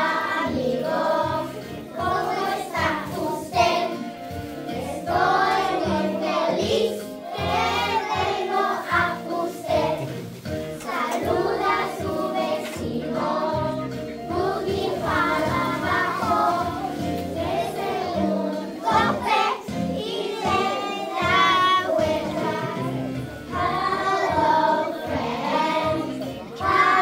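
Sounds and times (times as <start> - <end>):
children singing: 0.0 - 27.0
music with steady bass: 0.0 - 27.0.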